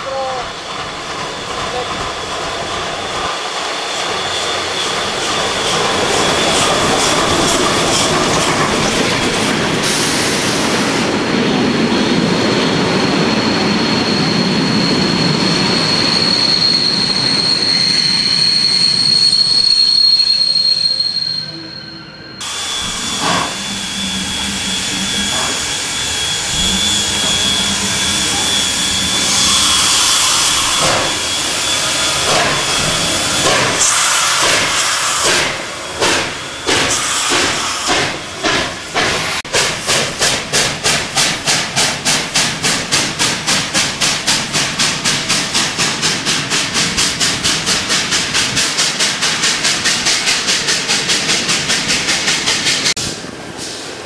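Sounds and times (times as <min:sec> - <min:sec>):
steam hissing: 0:00.0 - 0:11.2, 0:22.4 - 0:54.0
train wheels rumbling and clattering: 0:00.0 - 0:20.1, 0:22.4 - 0:54.0
high wheel squeal: 0:03.0 - 0:11.1, 0:11.8 - 0:39.4.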